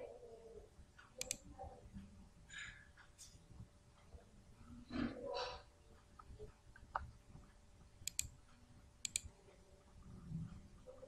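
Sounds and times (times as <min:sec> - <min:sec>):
faint background hiss: 0:00.0 - 0:11.0
computer mouse clicks: 0:01.0 - 0:01.5, 0:08.0 - 0:08.4, 0:09.0 - 0:09.3.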